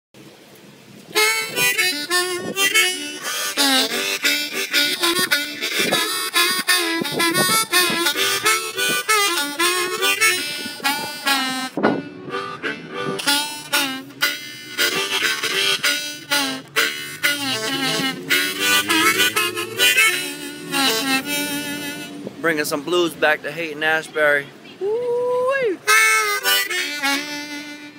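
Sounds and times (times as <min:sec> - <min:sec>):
blues harmonica: 0:01.1 - 0:23.1, 0:25.8 - 0:27.9.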